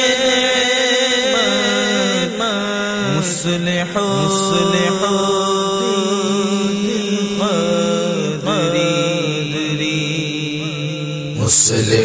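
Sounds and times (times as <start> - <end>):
voices chanting in harmony: 0.0 - 12.0.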